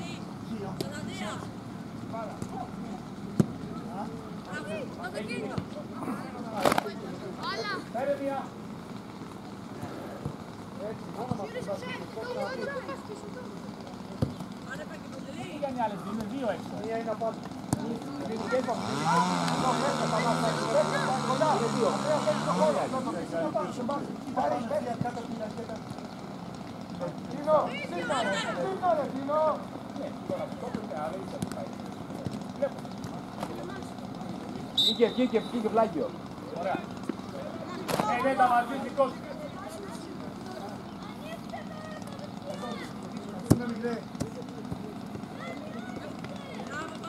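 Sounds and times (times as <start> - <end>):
vehicle engine passing: 18.3 - 23.4
players and spectators shouting: 27.4 - 29.4.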